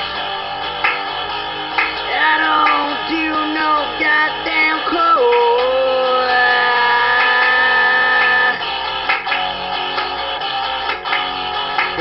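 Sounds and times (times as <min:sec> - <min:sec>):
person singing a long note: 0:02.1 - 0:08.6.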